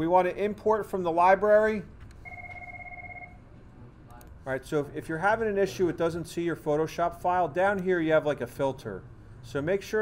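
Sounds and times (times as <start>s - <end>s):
electronic ring tone: 2.2s - 3.4s.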